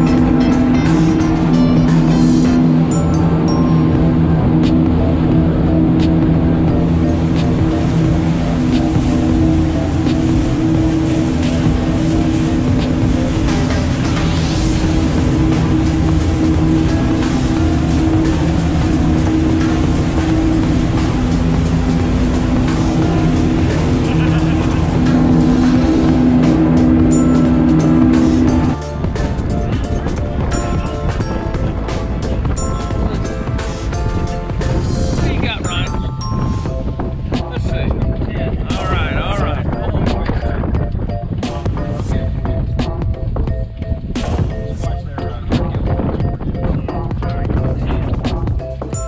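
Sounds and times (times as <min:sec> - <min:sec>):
outboard motors droning: 0:00.0 - 0:49.0
water rushing against hull: 0:00.0 - 0:49.0.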